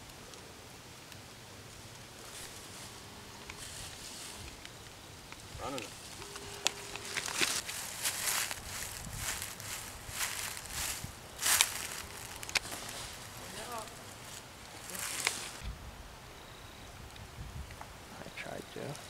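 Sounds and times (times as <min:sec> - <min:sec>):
footsteps crunching dry leaves: 0:02.2 - 0:04.6, 0:05.7 - 0:15.6.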